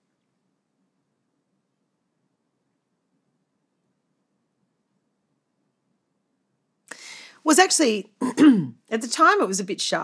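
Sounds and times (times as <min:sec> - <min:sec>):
woman's sharp intake of breath: 0:06.9 - 0:07.4
woman speaking: 0:07.4 - 0:10.0.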